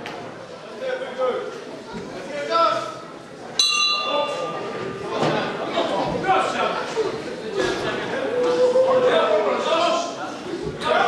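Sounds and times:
boxing ring bell ringing: 0:03.6 - 0:04.4.

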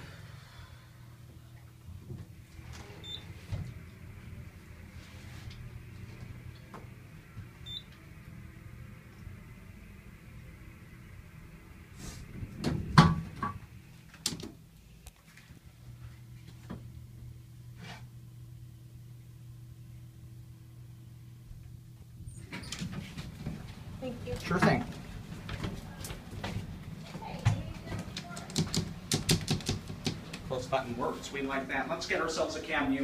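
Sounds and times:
elevator low hum: 0:00.0 - 0:33.0.

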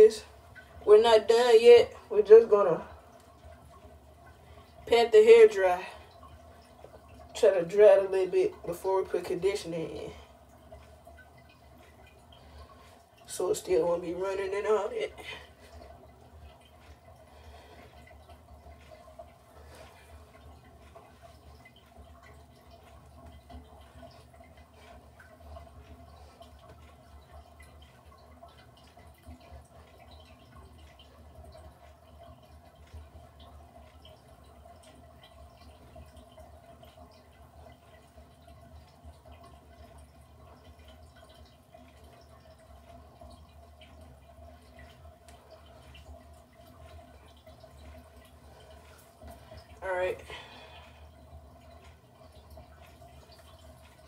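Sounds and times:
soft ticks: 0:18.0 - 0:50.2.

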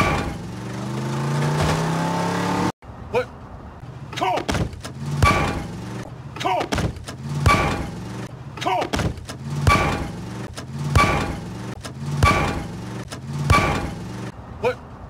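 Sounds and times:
race car engine drone: 0:00.0 - 0:02.8, 0:04.8 - 0:14.7
heavy metallic thud with ring: 0:05.2 - 0:05.7, 0:07.4 - 0:08.0, 0:09.6 - 0:10.3, 0:10.9 - 0:11.5, 0:12.2 - 0:12.8, 0:13.5 - 0:14.0.

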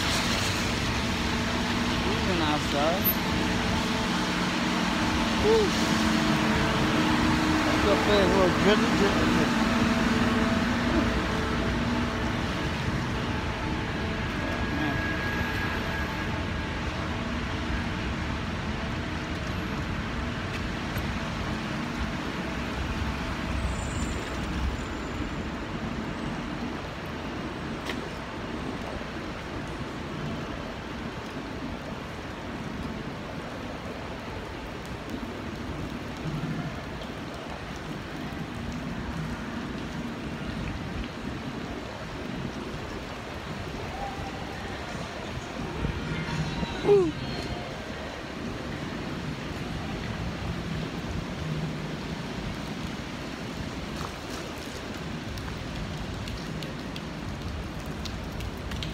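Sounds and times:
low rumble of traffic: 0:00.0 - 0:58.9
tyres hissing on wet pavement: 0:00.0 - 0:58.9
wind: 0:00.0 - 0:58.9.

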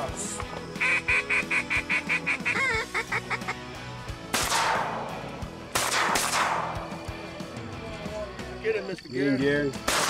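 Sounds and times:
duck call notes: 0:00.7 - 0:03.6
shotgun shots echoing: 0:04.3 - 0:06.9.

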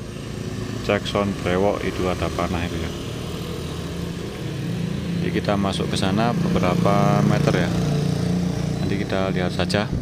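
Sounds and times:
small motorcycle engine running: 0:00.0 - 0:10.0.

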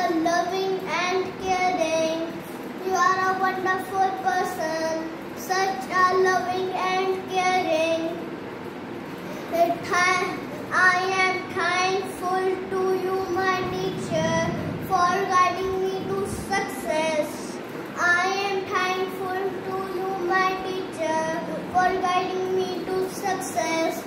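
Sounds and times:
boy singing: 0:00.0 - 0:08.2, 0:09.5 - 0:24.0.

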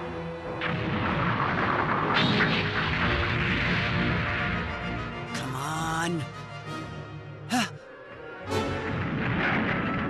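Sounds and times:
film score music: 0:00.0 - 0:10.0
debris thrown from blast: 0:00.6 - 0:04.8, 0:08.8 - 0:10.0
explosion blasts: 0:00.6 - 0:04.9, 0:08.7 - 0:10.0.

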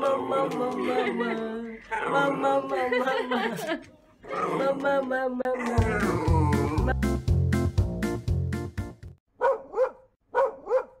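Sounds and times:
small dog barking: 0:09.4 - 0:11.0.

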